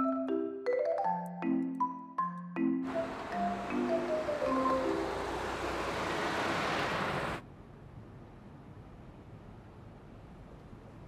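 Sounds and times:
soft melodic notes: 0.0s - 6.0s
city street traffic: 2.8s - 11.0s.

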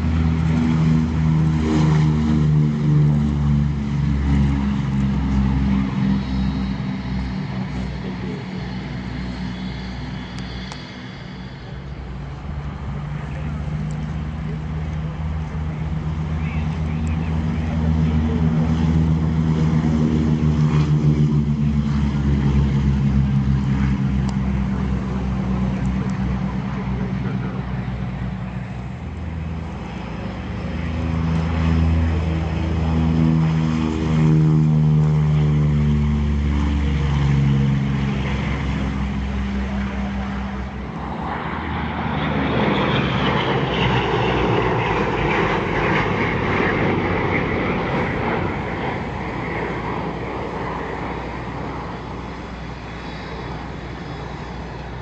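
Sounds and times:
propeller plane engines passing: 0.0s - 55.0s
rushing drone: 0.0s - 55.0s.

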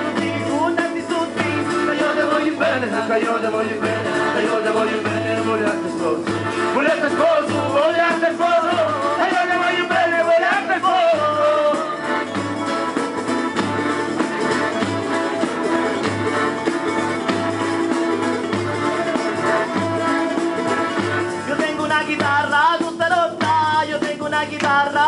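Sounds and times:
person singing: 0.0s - 12.1s
live band over loudspeakers: 0.0s - 25.0s.

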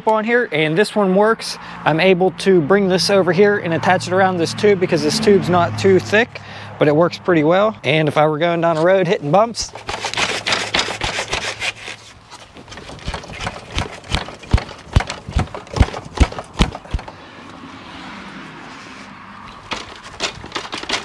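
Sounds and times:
bikes rattling on a bike rack: 8.6s - 17.2s, 19.4s - 21.0s.

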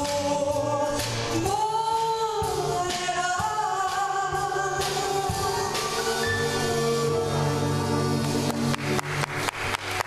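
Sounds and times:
woman singing jazz: 0.0s - 8.4s
piano: 0.0s - 10.0s.

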